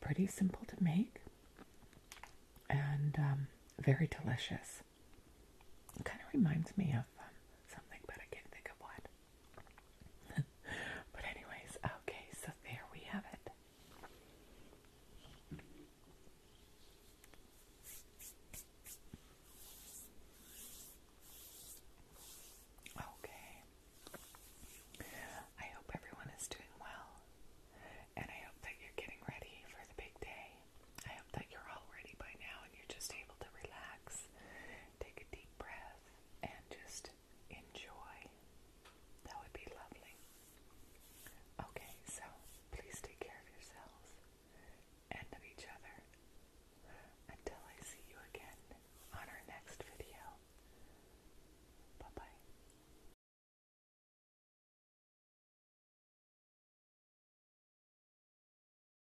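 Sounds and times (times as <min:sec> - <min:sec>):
woman whispering: 0:00.0 - 0:01.3, 0:02.7 - 0:04.9, 0:06.0 - 0:09.1, 0:10.3 - 0:13.6, 0:22.9 - 0:24.3, 0:25.0 - 0:34.3, 0:35.0 - 0:38.4, 0:39.2 - 0:40.3, 0:41.6 - 0:44.2, 0:45.1 - 0:46.1, 0:47.0 - 0:50.4, 0:52.0 - 0:52.5.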